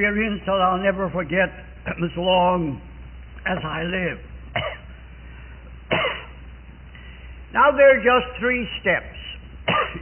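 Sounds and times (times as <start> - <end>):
low recording hum: 0.0 - 10.0
person coughing: 4.6 - 4.9, 5.9 - 6.4, 9.7 - 10.0.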